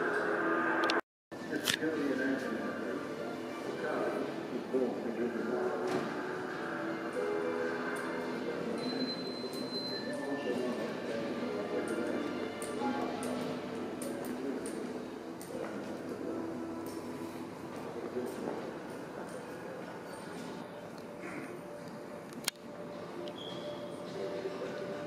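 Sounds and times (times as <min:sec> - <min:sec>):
faint background music: 0:01.4 - 0:25.0.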